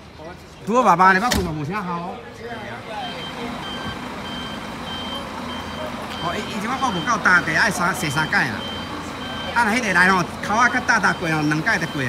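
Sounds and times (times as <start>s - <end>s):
coach engine running: 2.6s - 12.0s
reversing alarm beeping: 2.9s - 12.0s.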